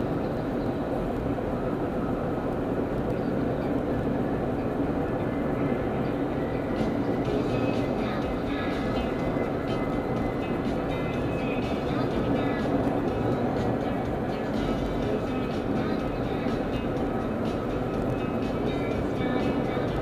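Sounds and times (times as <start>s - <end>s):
car road and engine noise: 0.0s - 20.0s
faint music: 0.0s - 20.0s.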